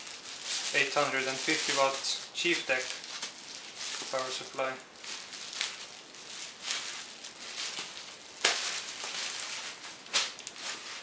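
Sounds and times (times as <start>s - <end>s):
packaging rustling and crackling: 0.0s - 11.0s.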